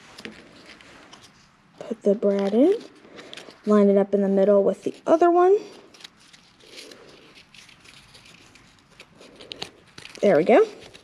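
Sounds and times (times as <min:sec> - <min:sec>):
cardboard strips rustling and scraping: 0:00.0 - 0:01.5, 0:02.1 - 0:11.0.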